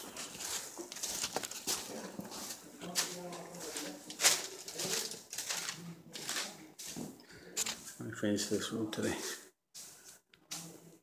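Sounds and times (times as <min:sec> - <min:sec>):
footsteps on plastic sheeting: 0:00.0 - 0:07.9
sharp plastic crackle: 0:00.1 - 0:06.7.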